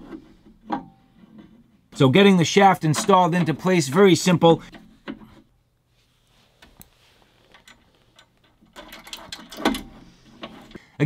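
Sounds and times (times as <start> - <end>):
metallic clicks and knocks: 7.5 - 10.8.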